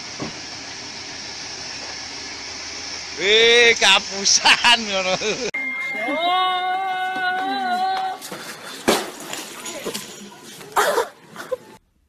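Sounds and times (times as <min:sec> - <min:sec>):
girl holding shrill note: 0:05.6 - 0:07.9.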